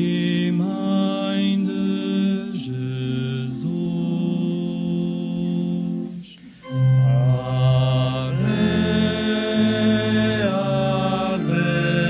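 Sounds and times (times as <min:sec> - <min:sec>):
slow chant-like hymn: 0:00.0 - 0:12.0.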